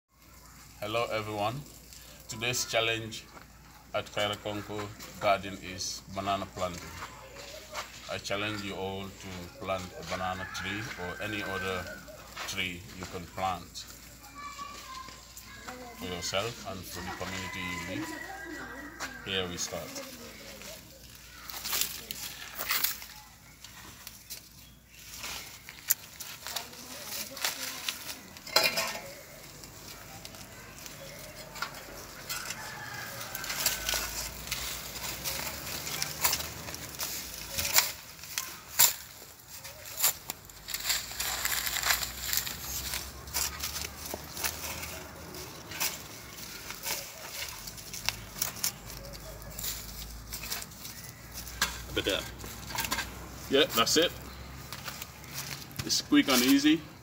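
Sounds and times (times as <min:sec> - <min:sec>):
hand scraping soil and leaves: 0:00.1 - 0:57.0
rooster crowing: 0:10.0 - 0:12.5, 0:16.8 - 0:19.9, 0:30.6 - 0:36.4.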